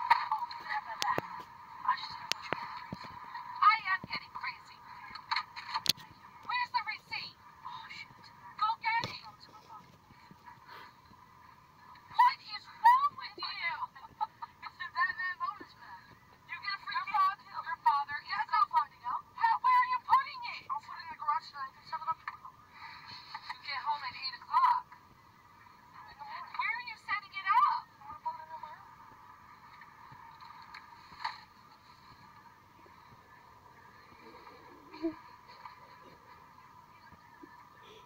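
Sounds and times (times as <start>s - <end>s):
people arguing through phone speaker: 6.4s - 9.4s, 12.1s - 13.9s, 16.5s - 22.5s.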